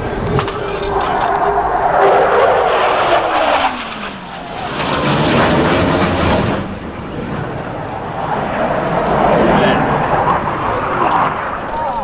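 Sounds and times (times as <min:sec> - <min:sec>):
jet roaring past: 0:00.0 - 0:12.0.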